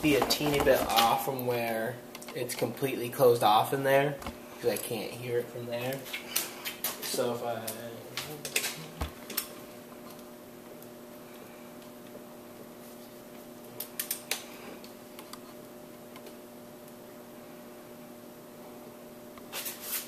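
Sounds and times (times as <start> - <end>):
steady hum: 0.0 - 20.0.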